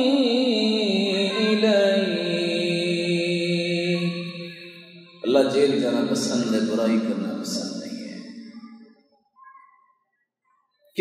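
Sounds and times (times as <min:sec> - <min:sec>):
man's voice: 0:00.0 - 0:08.3.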